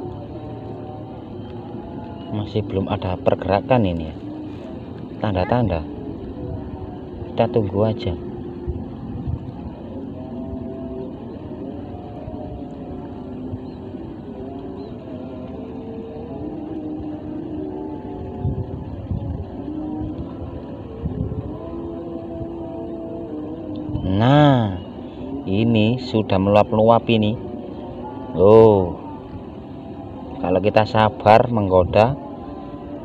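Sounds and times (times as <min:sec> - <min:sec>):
engine drone shifting pitch: 0:00.0 - 0:33.0.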